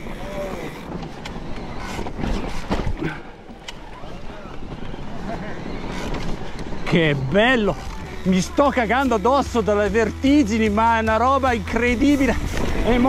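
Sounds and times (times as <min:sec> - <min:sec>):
bike tyres rattling on rock: 0:00.0 - 0:13.0
wind buffeting microphone: 0:11.9 - 0:13.0.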